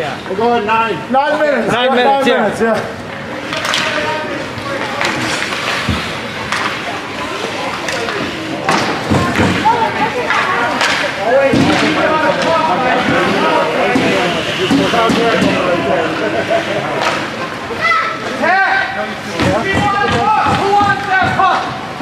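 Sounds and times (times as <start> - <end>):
spectator voices: 1.9 - 21.8
hockey sticks and puck clacking: 2.7 - 17.6, 19.3 - 22.0.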